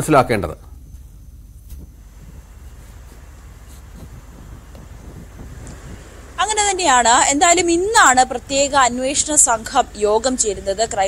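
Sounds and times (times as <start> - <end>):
wind rumble on microphone: 1.6 - 8.7.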